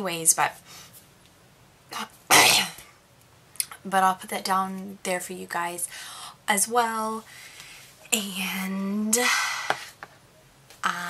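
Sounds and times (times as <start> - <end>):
woman coughing loudly: 2.3 - 2.8.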